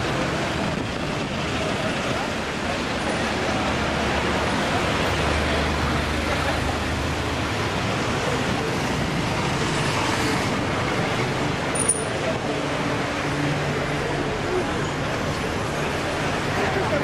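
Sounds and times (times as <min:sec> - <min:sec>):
indistinct crowd chatter: 0:00.0 - 0:17.0
street traffic: 0:00.0 - 0:17.0.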